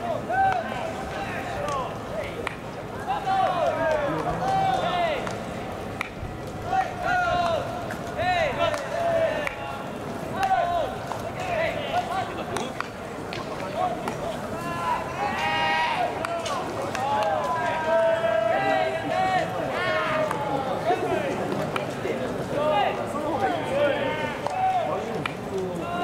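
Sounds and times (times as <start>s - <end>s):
players shouting calls: 0.0s - 26.0s.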